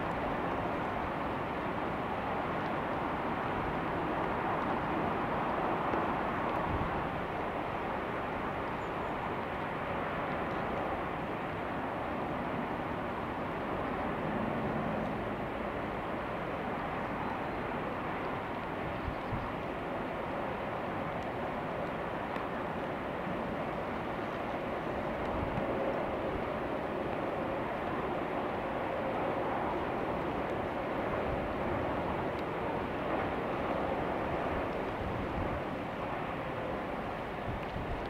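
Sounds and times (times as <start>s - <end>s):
diesel locomotive engine drone: 12.5s - 19.1s.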